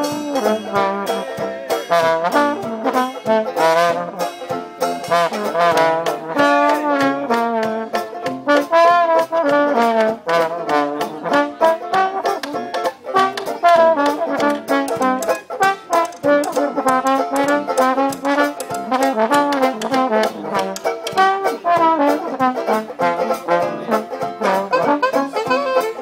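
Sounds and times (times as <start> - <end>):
jazz band playing: 0.0 - 26.0.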